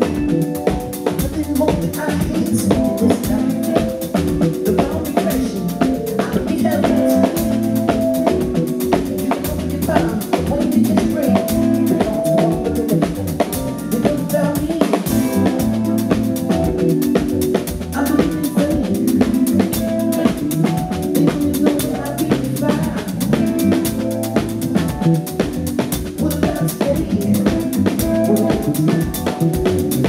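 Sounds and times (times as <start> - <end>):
drum kit beat: 0.0 - 30.0
live band playing upbeat groove: 0.0 - 30.0.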